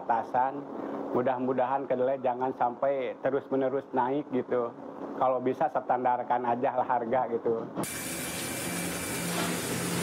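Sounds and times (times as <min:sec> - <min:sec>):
grinding mill running: 0:07.8 - 0:10.0.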